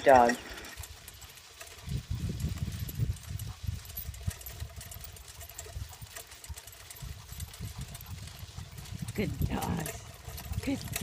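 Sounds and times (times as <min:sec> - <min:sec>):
cart rolling on dirt road: 0:00.0 - 0:11.0.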